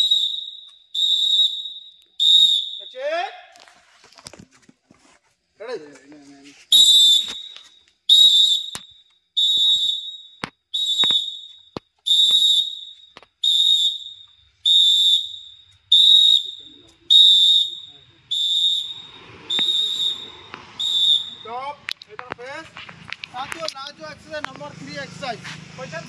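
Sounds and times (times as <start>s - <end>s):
whistle short blasts: 0.0s - 3.4s, 6.7s - 21.9s.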